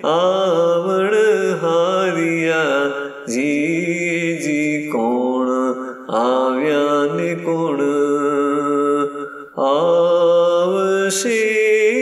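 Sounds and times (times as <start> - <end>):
person chanting a hymn: 0.0 - 12.0.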